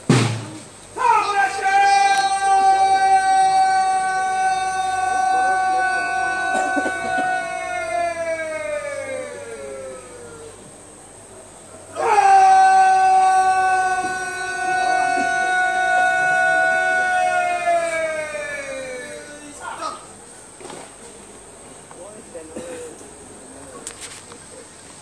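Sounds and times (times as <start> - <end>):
man shouting long commands: 1.0 - 10.6, 11.9 - 20.1.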